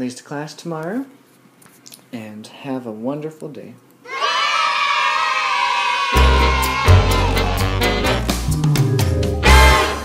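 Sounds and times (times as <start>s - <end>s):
children cheering and shouting: 4.0s - 7.7s.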